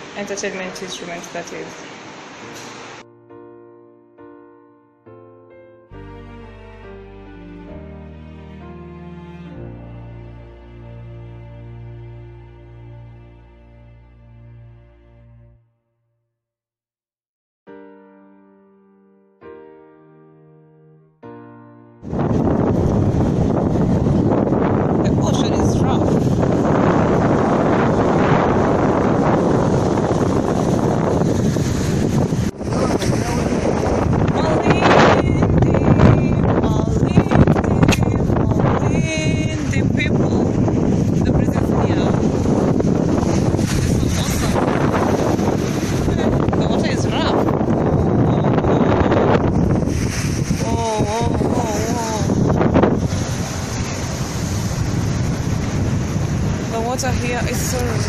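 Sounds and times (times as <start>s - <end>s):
sea surf: 0.0s - 3.2s, 22.0s - 58.0s
wind buffeting microphone: 22.0s - 58.0s
wavering voice: 50.6s - 52.4s.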